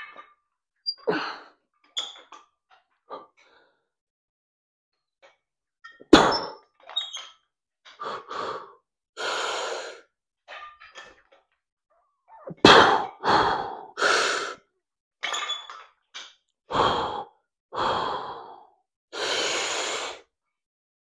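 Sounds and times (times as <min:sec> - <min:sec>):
man breathing hard: 0:08.0 - 0:10.1, 0:12.7 - 0:14.6, 0:16.7 - 0:20.3.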